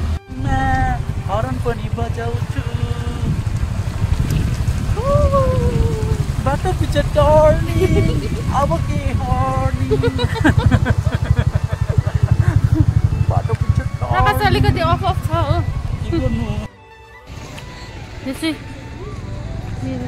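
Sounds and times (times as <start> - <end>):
wind buffeting microphone: 0.0 - 16.7
motorcycle engine drone: 0.0 - 20.0
person speaking: 5.0 - 16.6.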